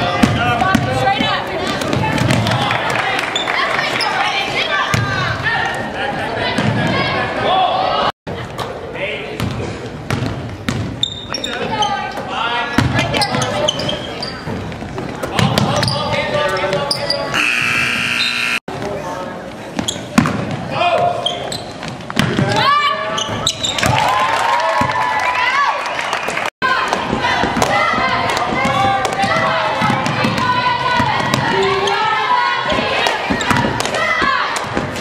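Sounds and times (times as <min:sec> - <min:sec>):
basketball bouncing on hardwood: 0:00.2 - 0:02.6.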